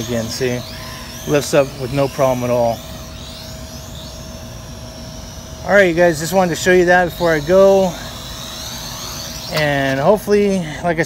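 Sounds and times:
quadcopter motors whining: 0.0s - 11.0s
steady hum: 0.0s - 11.0s.

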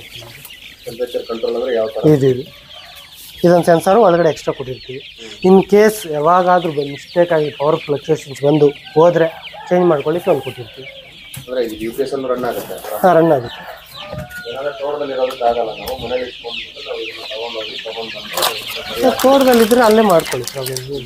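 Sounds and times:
chickens clucking: 0.0s - 21.0s
chicks peeping: 0.0s - 21.0s.

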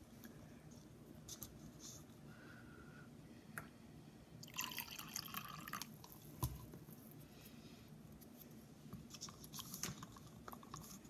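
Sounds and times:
water pouring from a cup: 4.4s - 6.2s.

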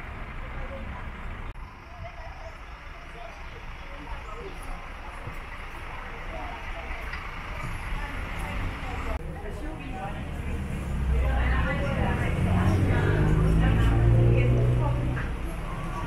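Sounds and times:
indistinct voices talking: 0.0s - 16.0s.

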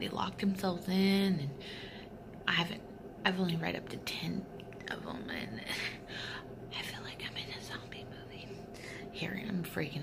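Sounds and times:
woman whispering: 6.7s - 10.0s.

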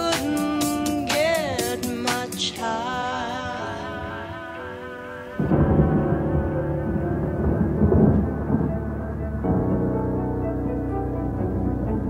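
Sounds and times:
loud low rumble: 5.4s - 12.0s.

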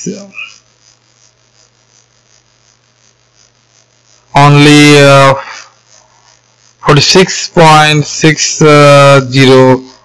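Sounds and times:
faint electrical hum with hiss: 0.0s - 10.0s
person speaking: 6.8s - 10.0s.

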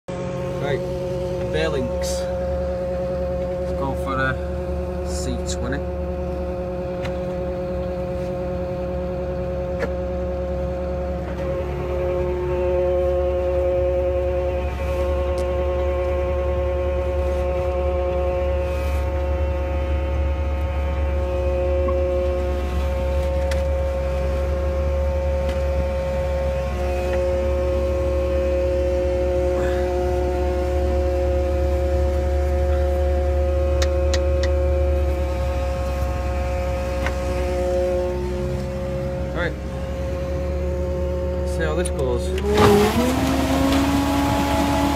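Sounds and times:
concrete mixer running: 0.1s - 44.9s
low engine rumble: 0.1s - 44.9s
mechanical whine: 0.1s - 44.9s.

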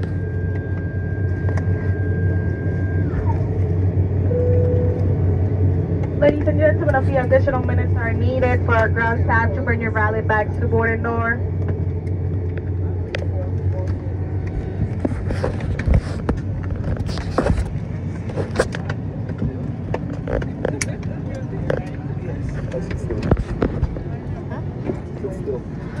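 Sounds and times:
steady low hum: 0.0s - 26.0s
voices in background: 18.2s - 26.0s.

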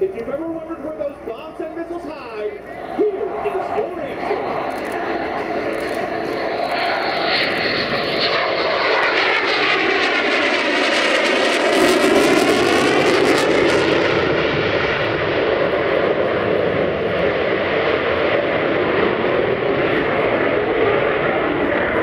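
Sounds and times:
jet engine roar: 0.0s - 22.0s.

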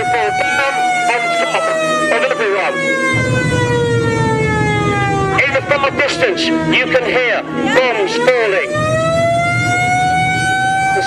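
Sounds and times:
voices: 0.0s - 2.8s, 5.3s - 8.8s
air raid siren wailing: 0.0s - 11.0s.

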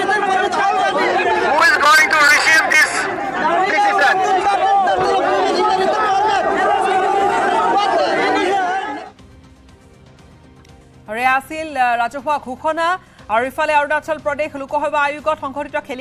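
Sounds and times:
crowd talking and shouting: 0.0s - 9.2s.

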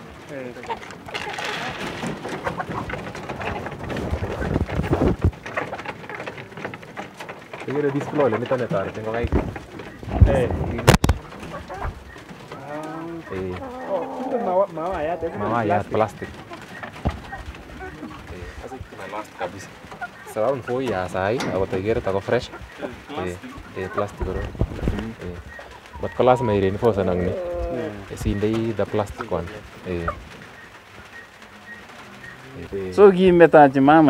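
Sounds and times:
doves cooing: 0.0s - 34.0s.

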